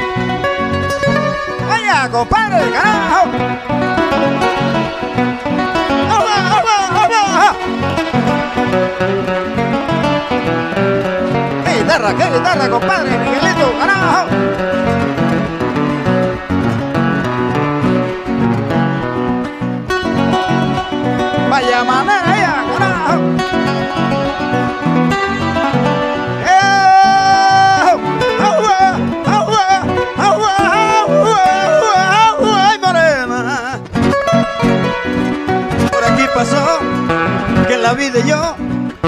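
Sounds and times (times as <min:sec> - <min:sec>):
acoustic guitars playing: 0:00.0 - 0:39.0.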